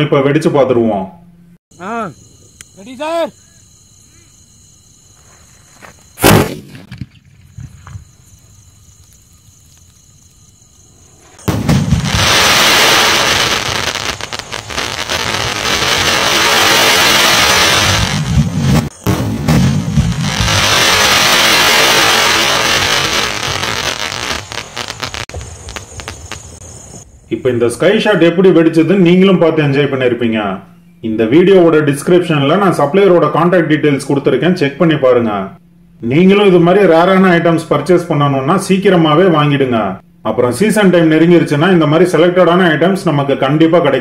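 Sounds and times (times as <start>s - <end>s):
firework launch bang: 6.2s - 7.1s, 11.3s - 27.0s
firework crackle: 11.1s - 27.0s.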